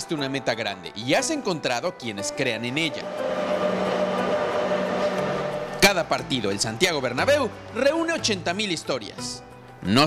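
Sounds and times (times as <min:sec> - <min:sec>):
high steady whine: 0:02.2 - 0:06.6
train rumbling at platform: 0:02.3 - 0:06.5.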